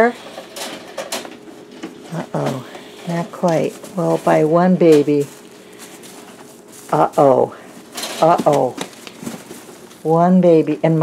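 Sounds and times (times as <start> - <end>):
wire cage scraping and rattling: 0.0 - 1.4, 7.8 - 8.4.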